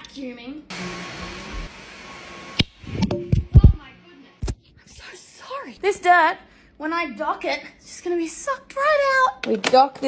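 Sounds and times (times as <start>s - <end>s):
vacuum cleaner running: 0.7s - 3.1s.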